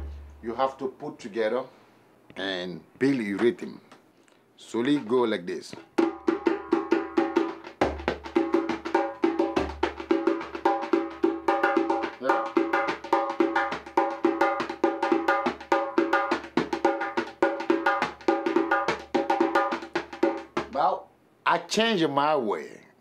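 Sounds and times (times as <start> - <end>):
deep bass drum strokes: 0.0 - 0.4
hand drum fast rhythm: 5.9 - 20.9.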